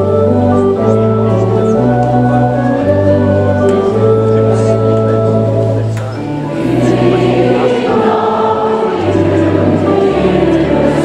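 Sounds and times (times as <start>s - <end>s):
congregation singing: 0.0s - 11.0s
low held accompanying notes: 0.0s - 11.0s.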